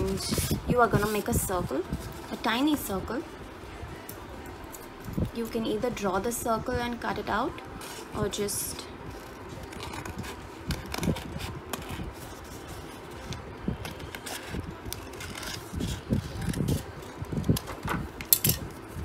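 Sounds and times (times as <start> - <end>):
scissors cutting paper: 9.6 - 17.7.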